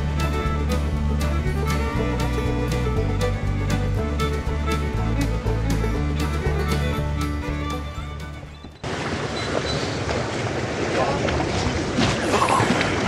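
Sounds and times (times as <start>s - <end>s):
background music: 0.0s - 8.8s
outboard motors running: 0.0s - 12.0s
rushing water: 0.0s - 13.0s.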